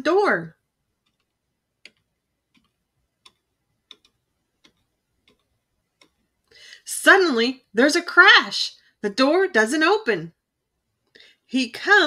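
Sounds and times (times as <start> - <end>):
faint ticking: 1.0 - 6.6.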